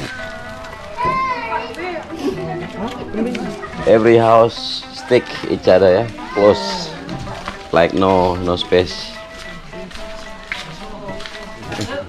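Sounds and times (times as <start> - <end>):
children calling and chattering: 0.0 - 12.0
music playing: 0.0 - 12.0.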